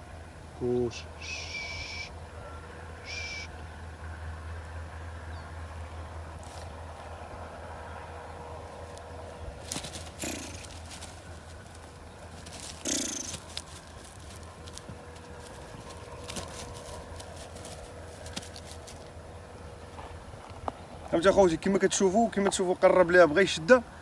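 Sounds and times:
low outdoor rumble: 0:00.0 - 0:24.0
short hissing: 0:12.8 - 0:13.4.

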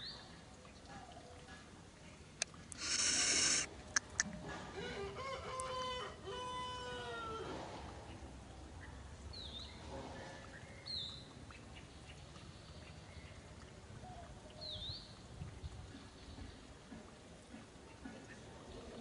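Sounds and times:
drawn-out animal calls: 0:02.7 - 0:04.2.

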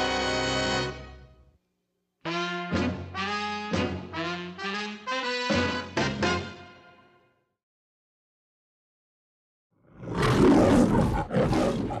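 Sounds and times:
lion roaring: 0:09.9 - 0:12.0.

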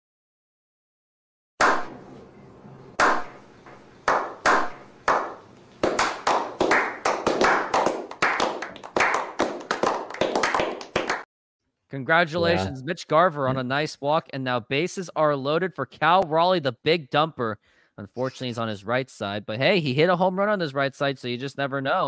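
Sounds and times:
people slow clapping: 0:04.0 - 0:11.3.

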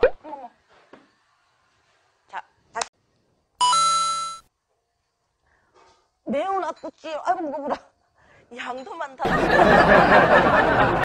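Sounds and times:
electronic doorbell chime: 0:03.6 - 0:04.4.

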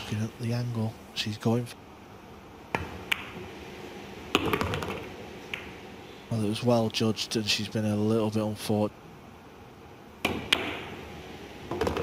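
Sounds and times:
cue striking ball click: 0:02.7 - 0:03.4, 0:10.2 - 0:10.9
pool balls clicking together: 0:02.7 - 0:03.4, 0:04.3 - 0:05.8, 0:10.2 - 0:10.9, 0:11.7 - 0:12.0.

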